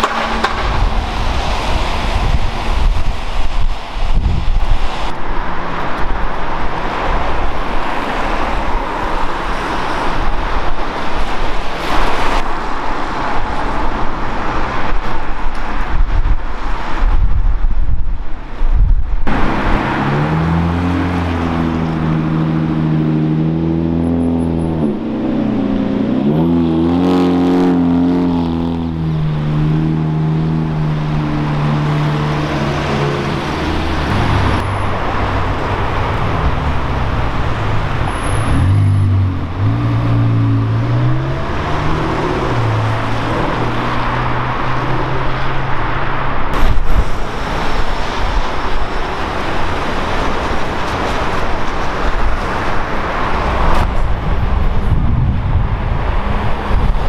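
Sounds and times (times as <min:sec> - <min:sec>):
traffic and tyre noise: 0:00.0 - 0:57.0
sports car passing: 0:19.3 - 0:57.0.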